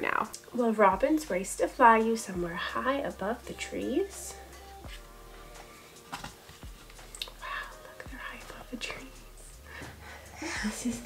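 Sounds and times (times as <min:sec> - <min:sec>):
faint music: 0:00.0 - 0:11.0
quiet whispering voices: 0:07.3 - 0:09.6.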